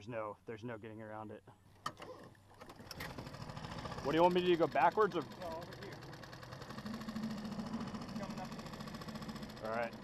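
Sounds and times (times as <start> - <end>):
boat motor buzzing hum: 2.1 - 10.0.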